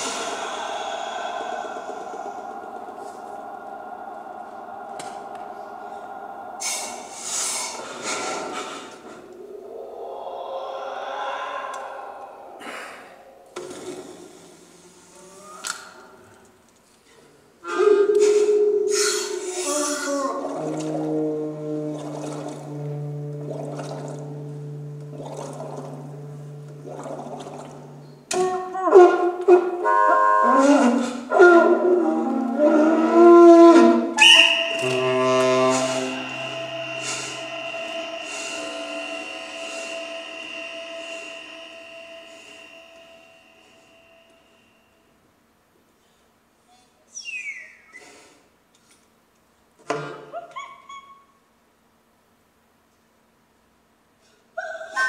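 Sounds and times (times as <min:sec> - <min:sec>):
high steady whistle-like tone: 0:00.0 - 0:14.5, 0:17.6 - 0:20.7, 0:22.0 - 0:45.3
held tones and low drones: 0:00.0 - 0:14.6, 0:20.4 - 0:28.3, 0:31.3 - 0:45.2
breathy air sounds: 0:00.0 - 0:16.5, 0:17.1 - 0:28.3, 0:30.5 - 0:45.2.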